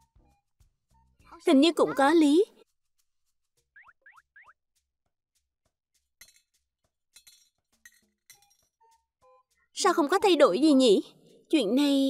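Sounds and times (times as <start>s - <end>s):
light coin clinks and plops: 6.2s - 8.8s.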